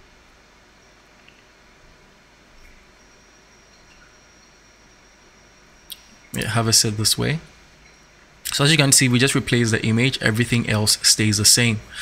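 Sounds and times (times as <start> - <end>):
faint steady hiss: 0.0 - 12.0
thin high-pitched whine: 0.0 - 12.0.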